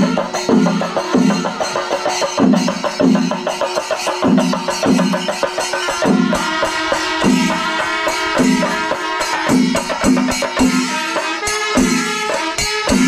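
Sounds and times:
drums beaten with sticks: 0.0 - 13.0
hand cymbals keeping time: 0.0 - 13.0.

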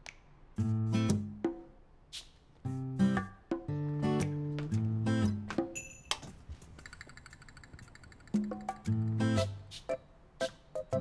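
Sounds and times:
guitar music: 2.7 - 5.7, 8.5 - 9.7.

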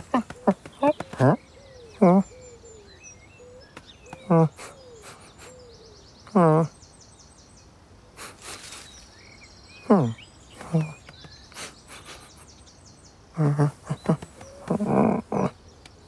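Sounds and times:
birds chirping: 0.0 - 16.0
person imitating cat noises: 2.0 - 2.3, 4.1 - 4.8, 6.3 - 6.8, 9.8 - 11.1, 13.4 - 15.6.

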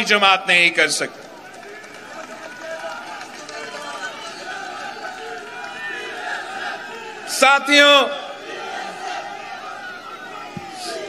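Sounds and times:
amplified voice of speaker: 0.0 - 1.2, 7.3 - 8.4
crowd of voices calling out: 0.0 - 11.0.

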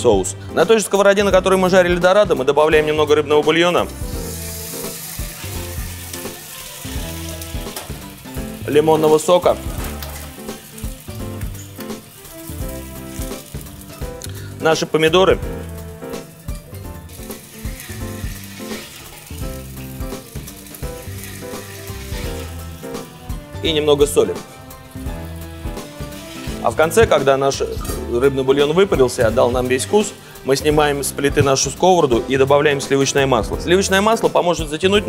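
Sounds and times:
background music with steady beat: 0.0 - 35.0
sizzling in a frying pan: 3.8 - 26.7
liquid poured into hot pan: 3.9 - 14.4, 17.0 - 23.0.

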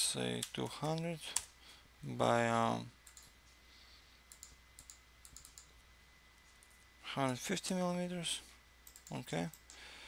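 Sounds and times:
faint high whine: 0.0 - 10.0
keyboard and mouse clicks: 4.3 - 5.7, 8.8 - 9.8.

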